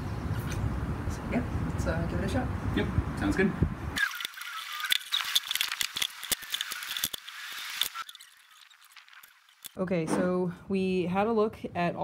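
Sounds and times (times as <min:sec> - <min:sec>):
tools and screws rattling on metal: 0:04.0 - 0:09.8.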